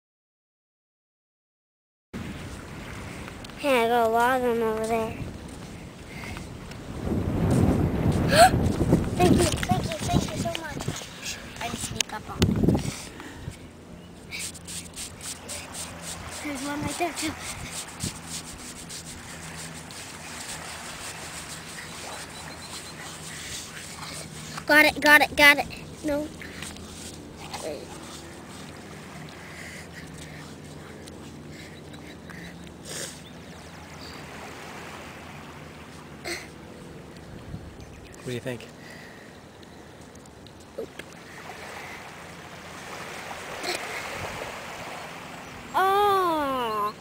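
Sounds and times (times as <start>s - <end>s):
wind noise on microphone: 5.0s - 13.6s, 16.3s - 21.6s, 37.3s - 38.0s
hands digging in wet sand: 14.3s - 24.8s
waves washing on shore: 14.3s - 30.7s, 33.1s - 36.6s, 41.0s - 47.0s.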